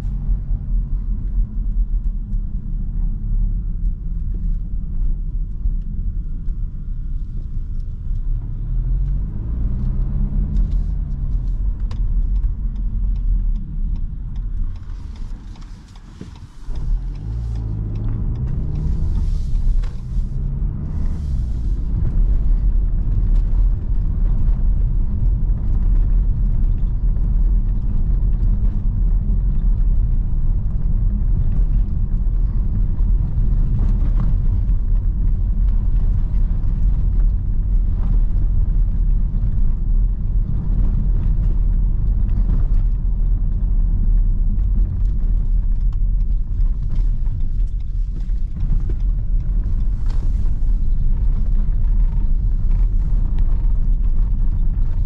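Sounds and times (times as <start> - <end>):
tyre rumble on cobblestones: 0.0 - 55.0.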